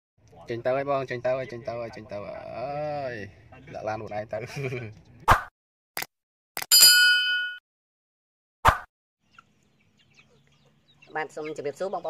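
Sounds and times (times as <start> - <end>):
bright bell ding: 6.7 - 7.6.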